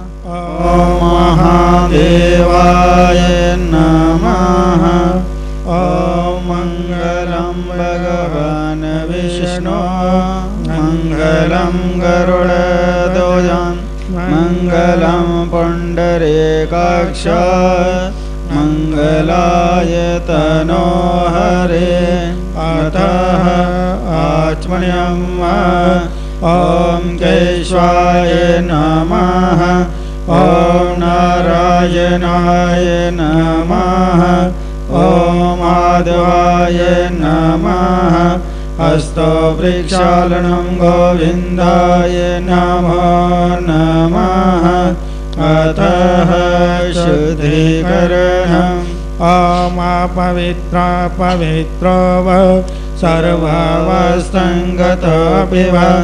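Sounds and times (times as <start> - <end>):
person chanting a sung melody: 0.0 - 56.0
steady low drone: 0.0 - 56.0.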